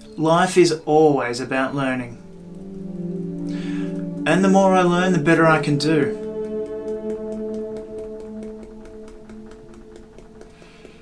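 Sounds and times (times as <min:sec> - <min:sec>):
ambient music low sustained tones: 0:00.0 - 0:11.0
person speaking: 0:00.2 - 0:02.3, 0:03.6 - 0:06.9.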